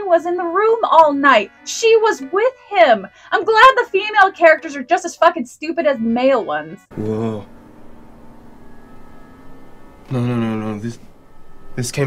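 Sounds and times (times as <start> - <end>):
ambient drone with held tone: 6.9 - 12.0.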